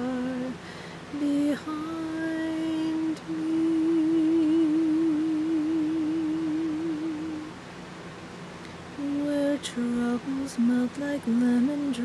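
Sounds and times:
fan hiss: 0:00.0 - 0:12.0.

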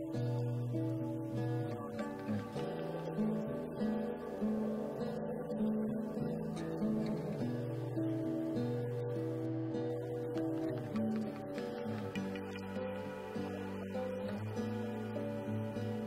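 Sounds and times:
strummed acoustic guitar: 0:00.0 - 0:16.0.

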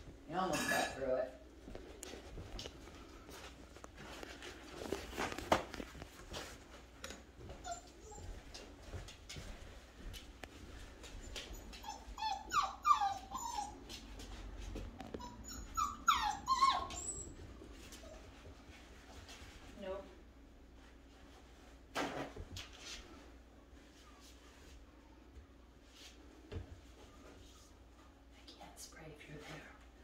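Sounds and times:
puppy whimpering: 0:07.5 - 0:08.7, 0:11.2 - 0:14.2, 0:15.0 - 0:18.3.

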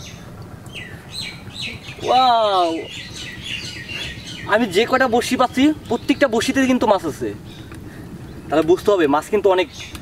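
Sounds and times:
bird calling: 0:00.0 - 0:10.0
low steady rumble: 0:00.0 - 0:10.0.

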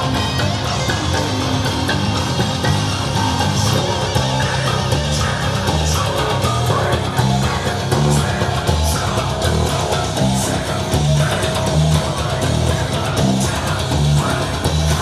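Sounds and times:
fingerstyle electric bass line: 0:00.0 - 0:15.0.

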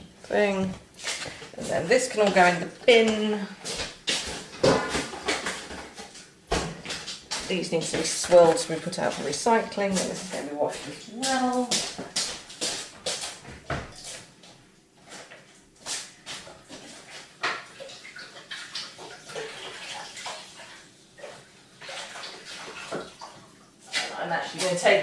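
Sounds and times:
tap water splashing in sink: 0:17.4 - 0:24.1.

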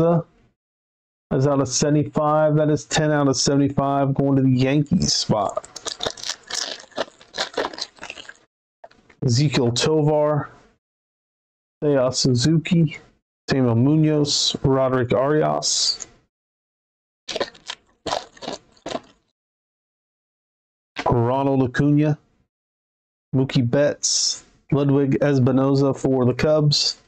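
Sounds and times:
foil wrapper tearing and crinkling: 0:05.5 - 0:08.4, 0:17.3 - 0:19.2.

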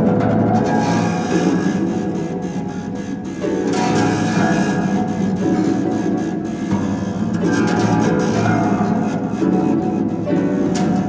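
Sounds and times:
harps playing together: 0:00.0 - 0:11.0.

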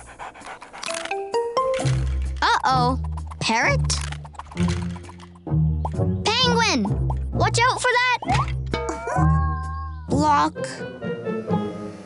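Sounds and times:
cartoon music with bass line: 0:01.3 - 0:11.9
cartoon character vocal sounds: 0:09.2 - 0:10.1.

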